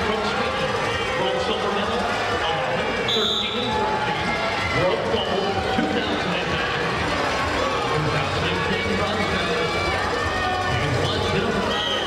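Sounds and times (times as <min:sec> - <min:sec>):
arena crowd chatter and calls: 0:00.0 - 0:12.0
referee's whistle blast: 0:03.1 - 0:03.8, 0:11.7 - 0:12.0.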